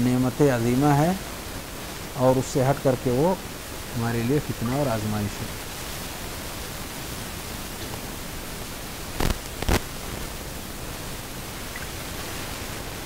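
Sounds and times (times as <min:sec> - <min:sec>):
background hiss: 0:00.0 - 0:13.0.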